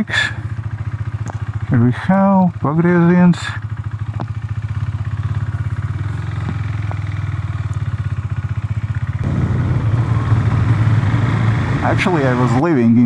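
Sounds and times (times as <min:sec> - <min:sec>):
motorcycle engine: 0:00.0 - 0:13.0.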